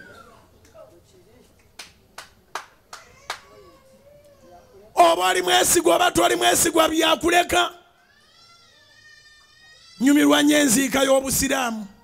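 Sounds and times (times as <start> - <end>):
hand claps: 1.6 - 3.5.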